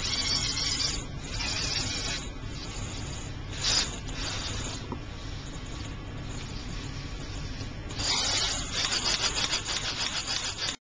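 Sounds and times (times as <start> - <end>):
robot servo motors rasping: 0.0 - 4.8, 7.9 - 10.8.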